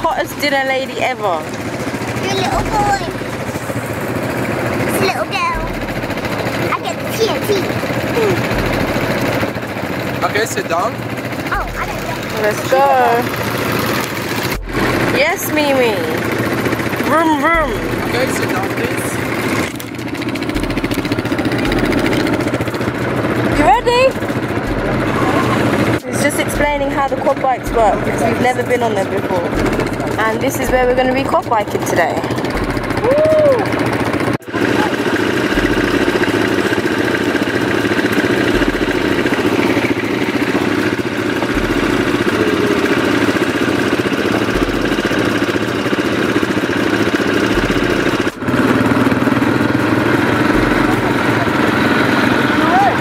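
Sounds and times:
quad bike engine idling: 0.0 - 53.0
faint voices: 4.7 - 13.4, 23.0 - 36.6, 41.0 - 45.4, 50.2 - 53.0.

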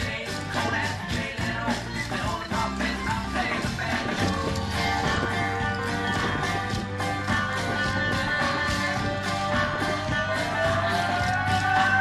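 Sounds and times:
banjo country music: 0.0 - 12.0
tap shoes clicking on stage: 0.0 - 12.0.

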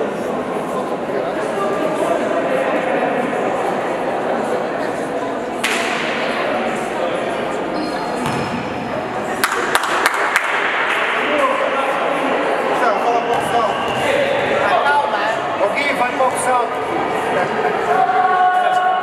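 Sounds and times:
many voices talking echoing: 0.0 - 19.0.

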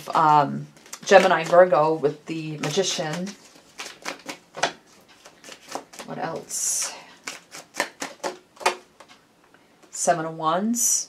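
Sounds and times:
cards clicking and snapping: 2.6 - 6.1, 7.2 - 9.2.

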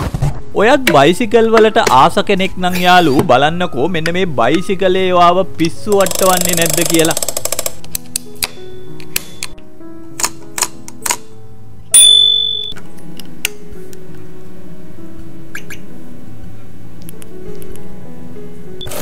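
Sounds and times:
background music: 0.0 - 19.0
bicycle bell ringing: 12.0 - 12.8.

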